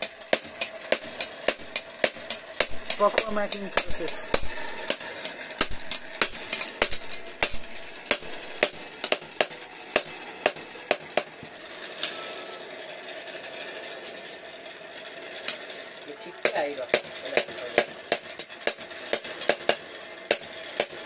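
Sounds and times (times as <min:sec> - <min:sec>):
hammer striking metal blade: 0:00.0 - 0:11.3, 0:16.4 - 0:21.0.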